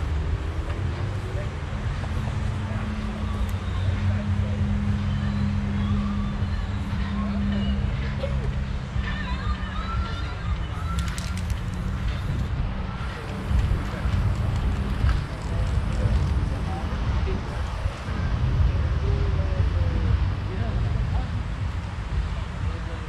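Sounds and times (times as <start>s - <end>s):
faint distant voices: 0.0s - 23.0s
sharp clicks: 10.8s - 12.5s.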